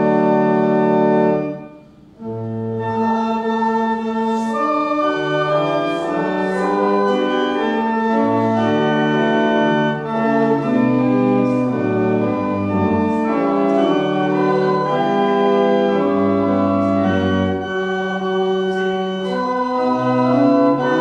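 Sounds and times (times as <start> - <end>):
organ playing a hymn: 0.0 - 21.0.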